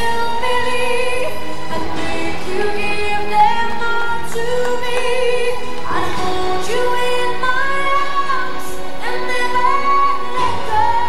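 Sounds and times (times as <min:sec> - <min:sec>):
woman singing slow song: 0:00.0 - 0:11.0.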